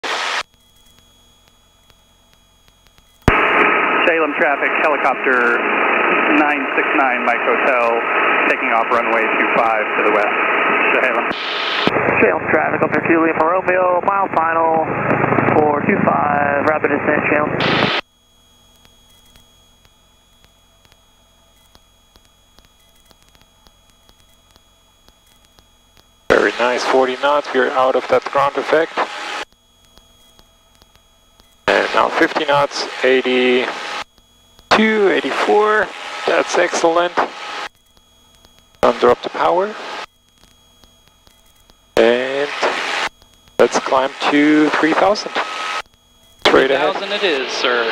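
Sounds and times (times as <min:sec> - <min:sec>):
radio static burst: 0:00.0 - 0:00.9, 0:02.9 - 0:18.0, 0:26.3 - 0:30.4, 0:31.6 - 0:34.1, 0:34.7 - 0:47.9
narrow-band radio hiss: 0:00.0 - 0:18.0, 0:18.7 - 0:47.9
soft ticks: 0:00.7 - 0:03.3, 0:29.5 - 0:31.6
radio call voice: 0:03.4 - 0:18.0, 0:26.3 - 0:29.4, 0:31.7 - 0:34.0, 0:34.7 - 0:37.6, 0:38.8 - 0:40.0, 0:42.0 - 0:45.8, 0:46.5 - 0:47.9
faint clicks: 0:29.4 - 0:31.6.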